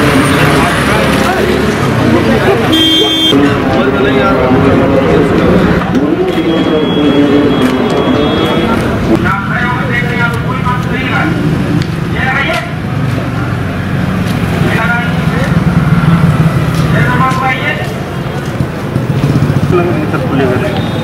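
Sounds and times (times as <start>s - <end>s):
vehicle engines rumbling: 0.0s - 21.0s
men talking indistinctly: 0.3s - 13.2s, 14.4s - 18.3s, 19.6s - 21.0s.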